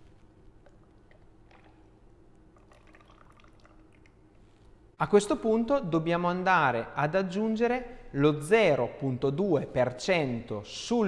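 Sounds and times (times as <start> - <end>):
juice trickling into jug: 0.2 - 4.8.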